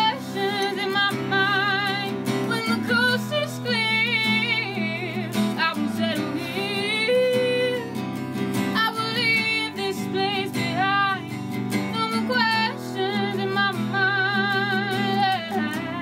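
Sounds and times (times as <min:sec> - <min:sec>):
person singing with vibrato: 0:00.0 - 0:08.0, 0:08.6 - 0:16.0
strummed acoustic guitar: 0:00.0 - 0:16.0.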